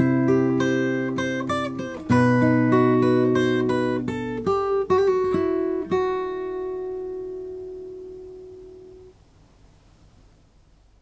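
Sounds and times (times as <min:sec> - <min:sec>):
acoustic guitar chord ringing: 0:00.0 - 0:09.2.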